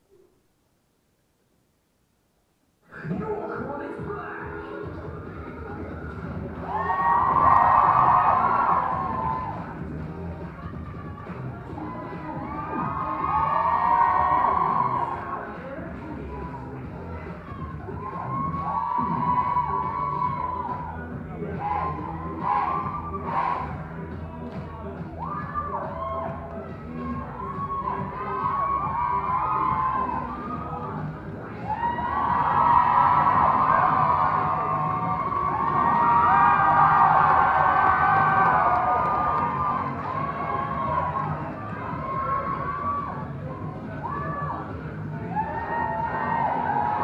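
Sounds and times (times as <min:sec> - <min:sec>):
music playing: 0:02.9 - 0:47.0
crowd cheering and shouting: 0:05.7 - 0:47.0.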